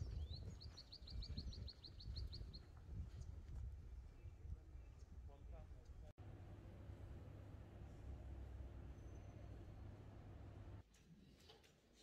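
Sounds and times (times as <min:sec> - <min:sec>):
low outdoor rumble: 0:06.2 - 0:10.8.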